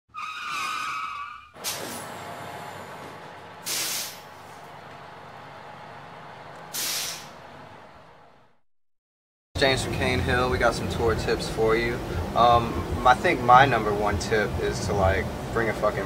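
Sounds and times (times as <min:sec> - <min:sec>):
air-brake hisses: 0:01.6 - 0:02.2, 0:03.6 - 0:04.6, 0:06.7 - 0:07.4
bus engine running: 0:01.6 - 0:08.6, 0:09.6 - 0:16.0.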